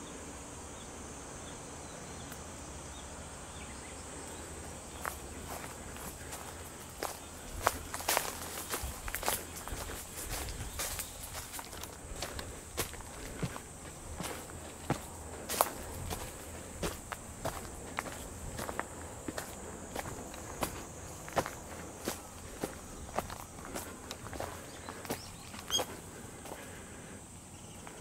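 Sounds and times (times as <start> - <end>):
footsteps crunching dry leaves: 5.0 - 26.8.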